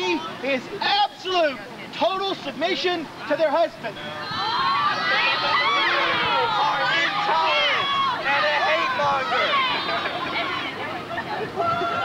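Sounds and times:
crowd shouting and hollering: 3.8s - 12.0s.

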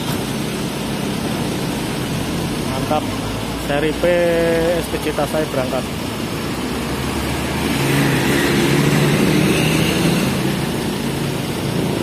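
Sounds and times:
diesel bus engine running: 0.0s - 12.0s.

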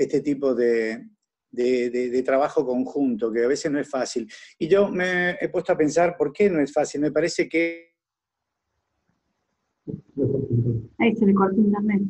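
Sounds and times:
garbled voice breaking up: 0.0s - 1.0s, 1.6s - 7.8s, 9.9s - 11.9s.

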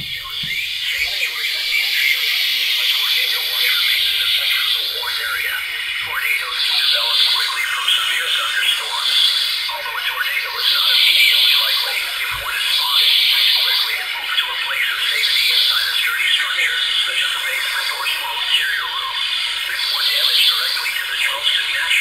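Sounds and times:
radio hiss: 0.0s - 22.0s
tinny radio voice: 0.0s - 22.0s.

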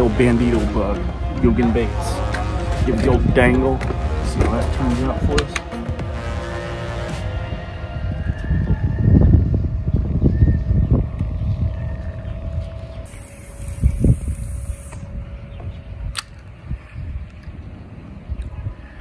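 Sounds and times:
wind buffeting microphone: 7.3s - 19.0s.

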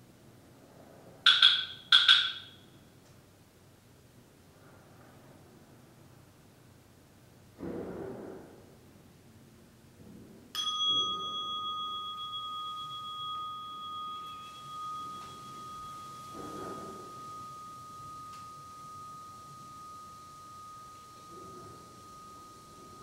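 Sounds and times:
meditation bell ringing: 1.3s - 2.8s, 10.6s - 23.0s.

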